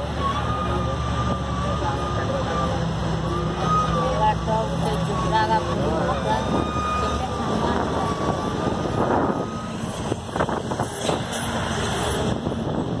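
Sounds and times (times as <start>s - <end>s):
vehicle engine and road noise: 0.0s - 13.0s.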